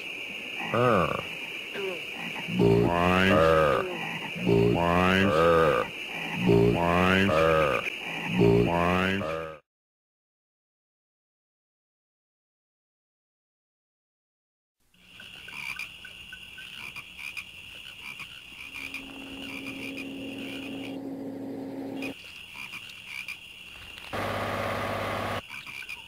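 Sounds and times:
frogs croaking: 0.0 - 9.6, 15.0 - 26.0
insects trilling: 0.0 - 9.6, 15.0 - 26.0.

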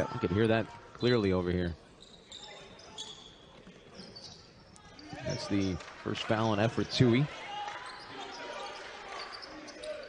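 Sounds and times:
low court noise: 0.0 - 10.0.

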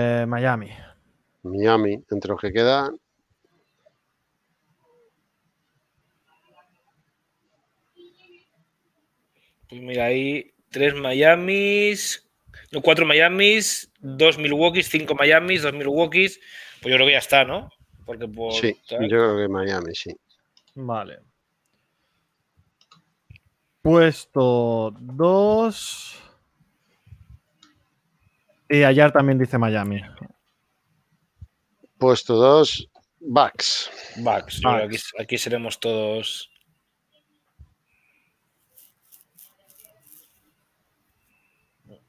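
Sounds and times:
man's voice: 32.0 - 36.4.

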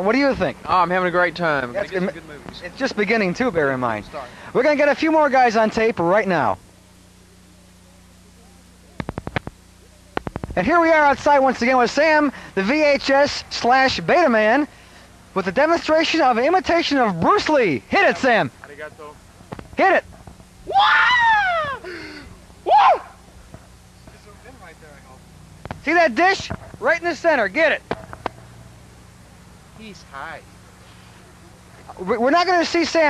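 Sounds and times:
low electrical hum: 0.0 - 33.0
man yelling martial-arts cries: 20.7 - 23.2.

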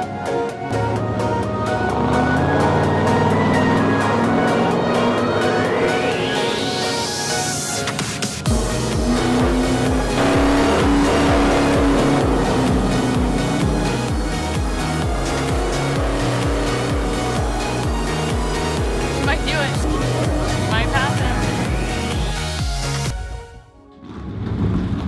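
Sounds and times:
race car engine at speed: 0.0 - 23.1
electronic music with heavy beat: 0.0 - 23.2.

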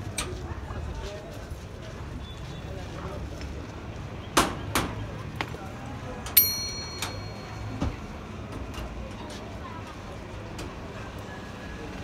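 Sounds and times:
metal object clinking and ringing: 6.4 - 8.0.

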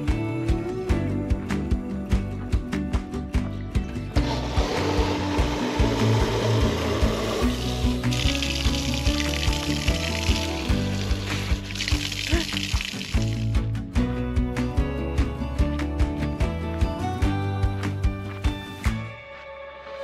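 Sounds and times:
background music: 0.0 - 20.0
water running into plastic bottle: 4.2 - 13.7.

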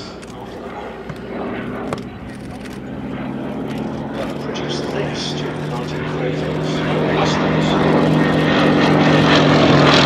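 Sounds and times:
propeller aircraft engine droning: 0.0 - 10.0.

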